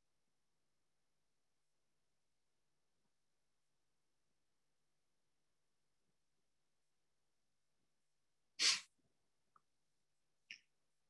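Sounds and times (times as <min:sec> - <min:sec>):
person sneezing: 0:08.6 - 0:08.9.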